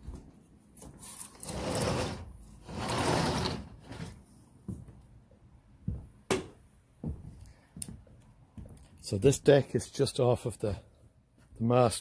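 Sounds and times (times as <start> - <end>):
sliding glass door rolling: 1.3 - 4.2.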